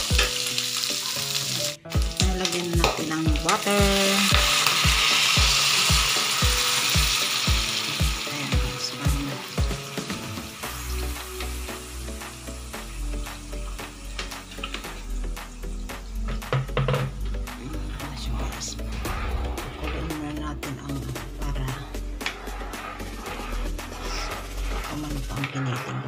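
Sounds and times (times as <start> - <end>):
meat sizzling in a wok: 0.0 - 17.1, 22.4 - 25.4
background music with steady beat: 0.0 - 26.0.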